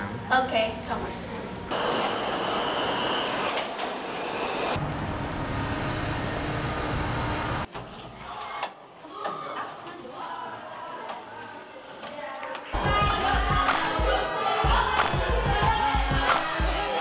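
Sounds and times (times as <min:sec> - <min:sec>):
subway train rushing: 0:01.7 - 0:07.7.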